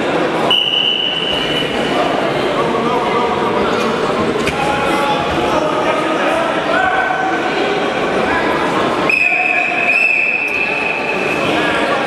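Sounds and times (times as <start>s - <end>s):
crowd voices in a hall: 0.0s - 12.0s
shrill whistle blast: 0.5s - 1.6s, 9.1s - 11.3s.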